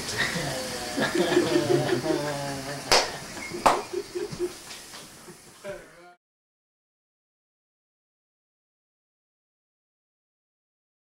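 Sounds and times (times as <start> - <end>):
man laughing: 0.3 - 4.6.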